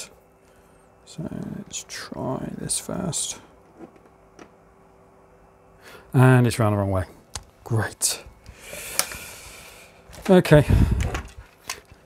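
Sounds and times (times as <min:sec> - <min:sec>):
faint steady hum: 0:00.0 - 0:12.0
breath: 0:05.8 - 0:06.1, 0:08.5 - 0:10.0.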